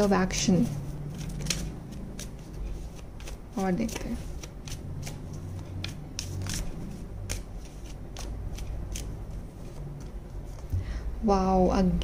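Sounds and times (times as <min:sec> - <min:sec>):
cards being shuffled: 0:00.4 - 0:10.7.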